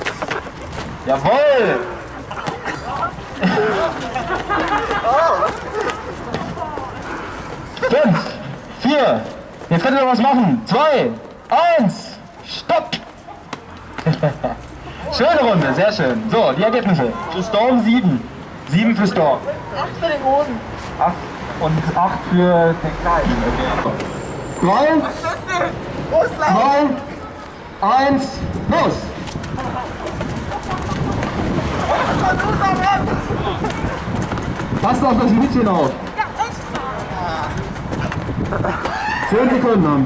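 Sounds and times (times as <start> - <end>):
footsteps running on cobblestones: 0.0 - 14.8, 28.4 - 40.0
group voices: 1.2 - 8.8, 29.1 - 34.2.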